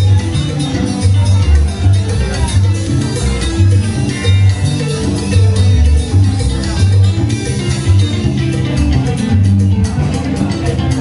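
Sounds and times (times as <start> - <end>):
live cumbia band playing: 0.0 - 11.0.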